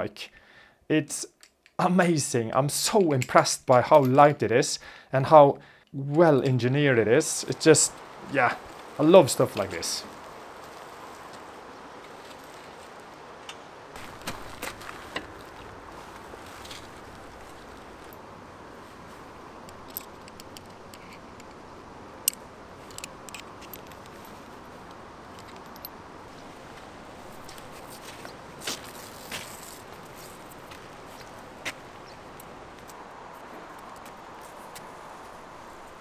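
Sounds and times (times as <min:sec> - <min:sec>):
outdoor background hiss: 0:00.0 - 0:36.0.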